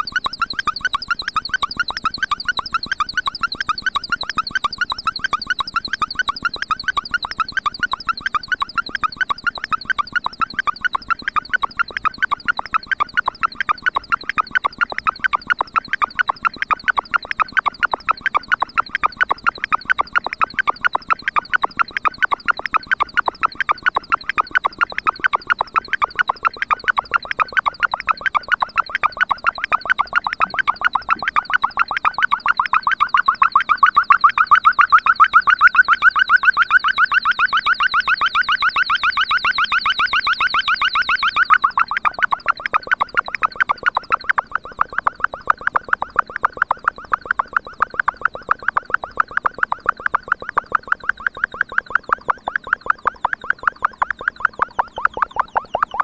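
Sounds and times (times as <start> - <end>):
synthesizer pulsing bleeps: 0.0 - 56.0.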